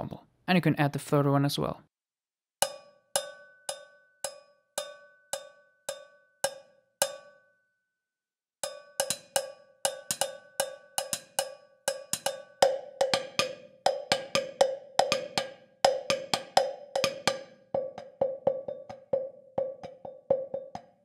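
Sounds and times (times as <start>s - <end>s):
sampled cowbells struck: 2.6s - 7.7s, 8.6s - 21.0s.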